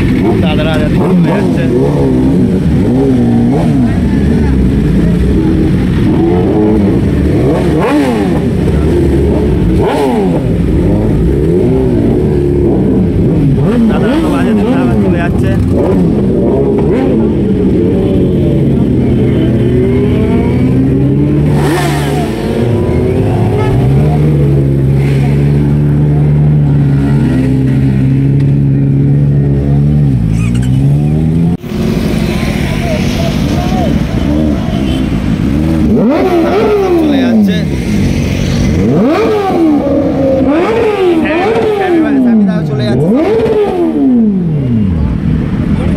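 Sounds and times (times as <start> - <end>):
crowd voices: 0.0 - 45.9
motorcycle engines revving: 0.0 - 45.9.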